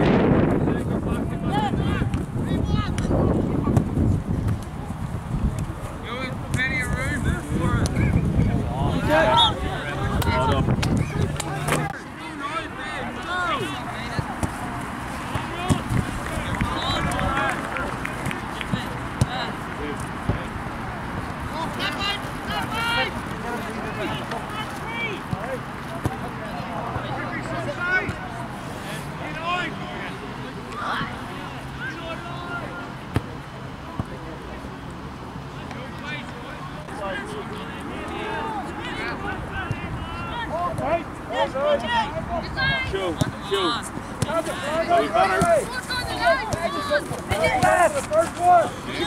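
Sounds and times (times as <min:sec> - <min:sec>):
outdoor noise: 0:00.0 - 0:49.0
players shouting: 0:05.8 - 0:34.4, 0:35.6 - 0:49.0
ball being kicked: 0:15.3 - 0:16.0.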